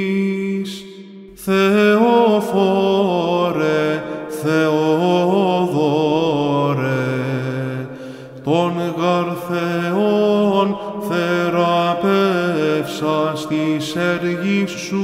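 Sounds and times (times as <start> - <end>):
man chanting melisma: 0.0 - 15.0.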